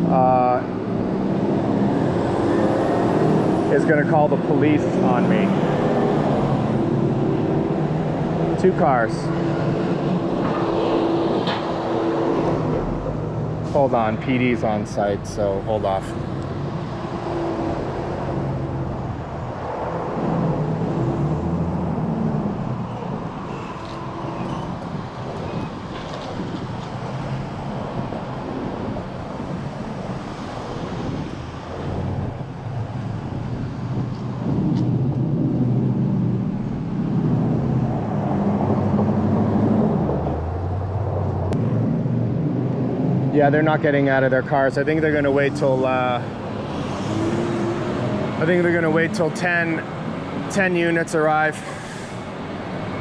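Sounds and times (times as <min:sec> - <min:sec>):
passing cars: 0:00.0 - 0:53.0.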